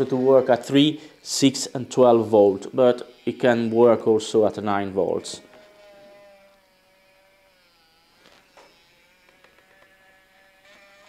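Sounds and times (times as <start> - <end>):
small motor whine: 0.0 - 11.0.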